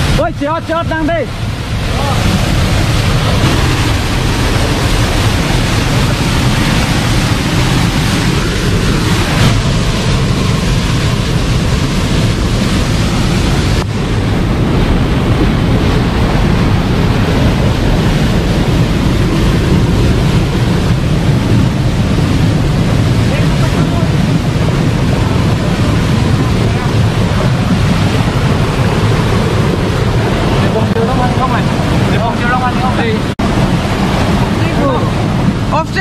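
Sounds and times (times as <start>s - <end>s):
waterfall and river rushing: 0.0s - 36.0s.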